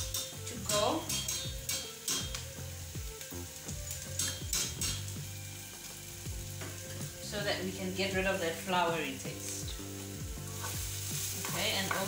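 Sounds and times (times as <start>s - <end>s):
wire whisk clicking against pan: 0.0s - 2.4s
roux sizzling in a saucepan: 0.0s - 12.0s.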